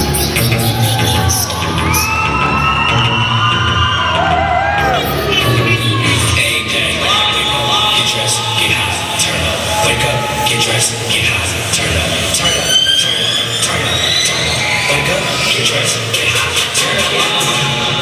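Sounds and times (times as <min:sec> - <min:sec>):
children shouting: 0:00.0 - 0:18.0
crowd cheering: 0:00.0 - 0:18.0
hip hop music over loudspeakers: 0:00.0 - 0:18.0.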